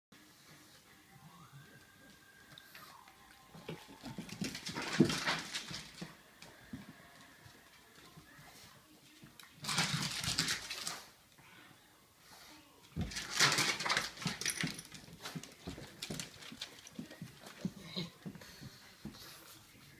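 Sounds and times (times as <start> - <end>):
dog and cat tussling: 2.6 - 8.8, 13.0 - 19.9.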